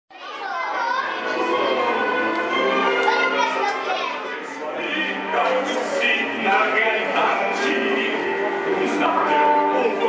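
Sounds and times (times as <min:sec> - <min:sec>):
children chattering and shouting: 0:00.1 - 0:10.0
music: 0:00.1 - 0:10.0.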